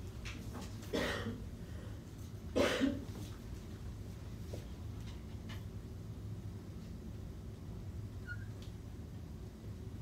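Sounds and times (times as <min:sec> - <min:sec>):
person coughing: 0:00.9 - 0:01.4, 0:02.5 - 0:03.1.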